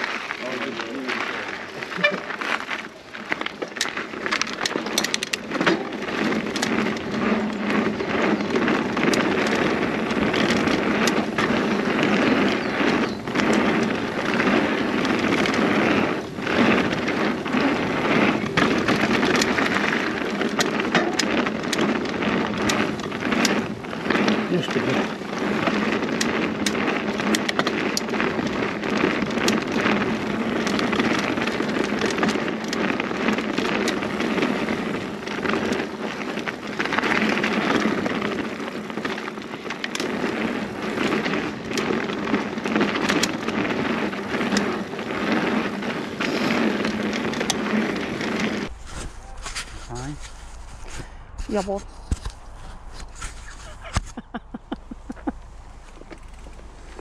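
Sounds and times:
bike clicking and rattling: 0.0s - 57.0s
bike tyres on dirt trail: 0.0s - 57.0s.

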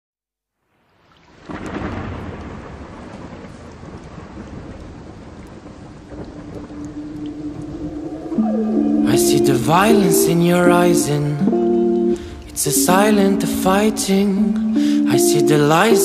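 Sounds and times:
rain: 0.6s - 16.0s
thunder rumbling: 1.4s - 14.7s
low held musical tone: 6.6s - 16.0s.

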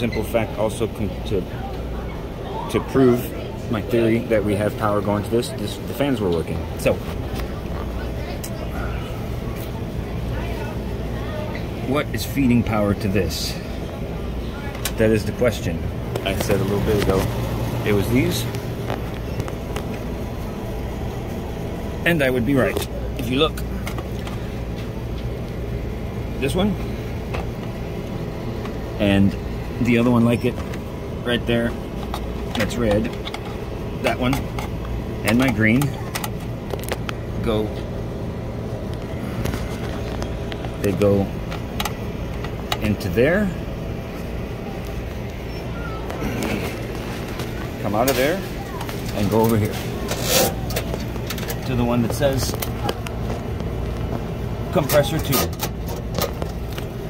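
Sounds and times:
faint voices: 0.0s - 57.0s
machinery humming: 0.0s - 57.0s.

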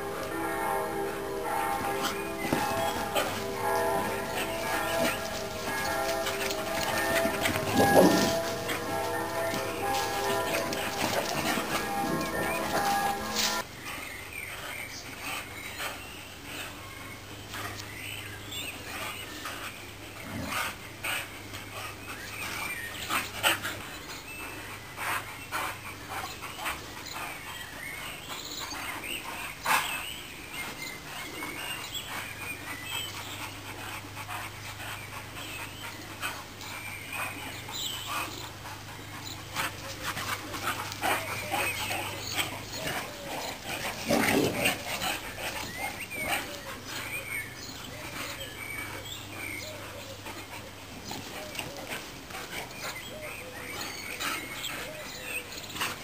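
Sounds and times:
dogs scuffling: 0.0s - 13.6s
dogs panting: 0.0s - 56.0s.

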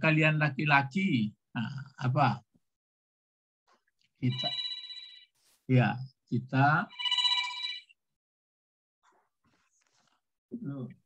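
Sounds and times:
telephone ringtone trilling: 4.2s - 5.3s, 6.9s - 7.9s.

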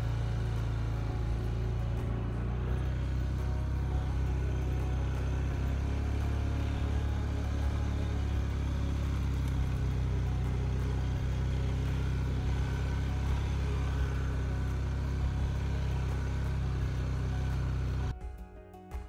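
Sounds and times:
vehicle engine running: 0.0s - 18.1s.

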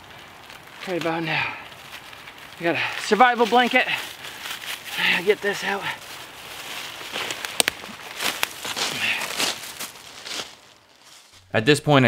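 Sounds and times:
footsteps crunching through leaves: 0.0s - 11.4s
twigs snapping underfoot: 0.0s - 11.4s.

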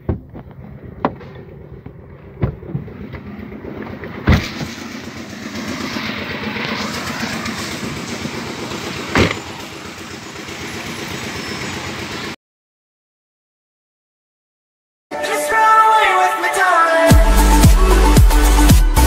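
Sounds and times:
car door opening and shutting: 4.2s - 4.8s, 9.1s - 9.6s.

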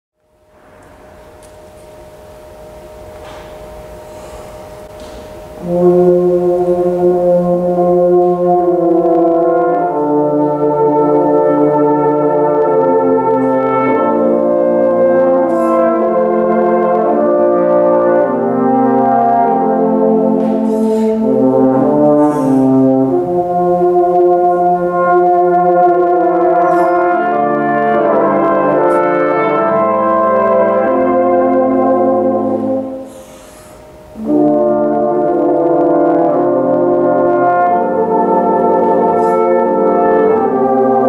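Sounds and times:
brass horn quartet playing chords: 0.4s - 41.0s.

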